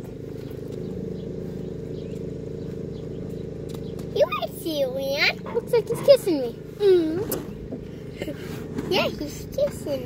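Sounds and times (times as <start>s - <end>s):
motor humming: 0.0s - 10.0s.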